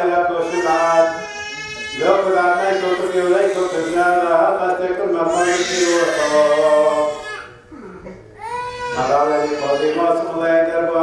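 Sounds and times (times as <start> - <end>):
baby wailing: 0.4 - 4.6, 5.2 - 7.6, 8.4 - 10.8
liturgical chanting: 2.0 - 7.5.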